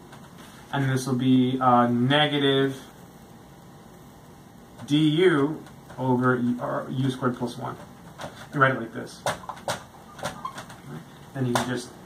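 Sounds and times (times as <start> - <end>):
faint hiss: 0.0 - 9.5
man talking: 0.7 - 2.9, 4.8 - 7.9, 8.5 - 9.3, 10.8 - 12.0.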